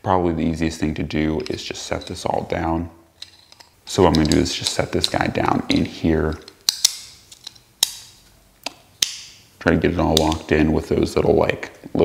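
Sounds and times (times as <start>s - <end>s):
sharp metal clicks: 3.2s - 9.4s, 10.1s - 10.5s.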